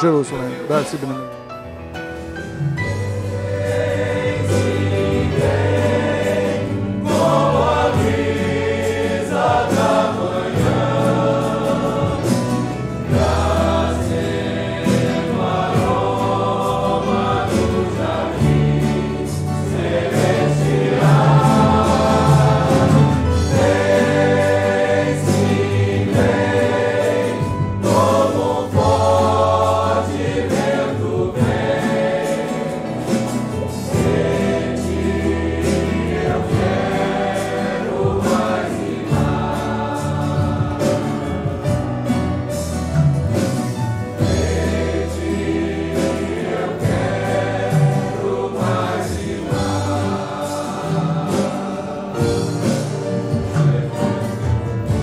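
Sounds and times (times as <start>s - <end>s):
congregation singing a hymn: 0.0s - 1.2s, 2.0s - 55.0s
keyboard accompaniment: 0.0s - 55.0s.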